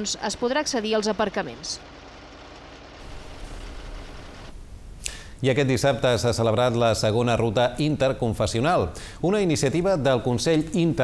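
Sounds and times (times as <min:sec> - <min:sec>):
street noise: 0:00.0 - 0:05.2
vehicle engine rumbling: 0:00.0 - 0:05.4.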